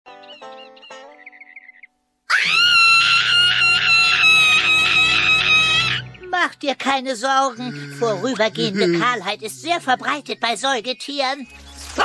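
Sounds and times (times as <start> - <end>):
cartoon character screaming: 2.3 - 6.1.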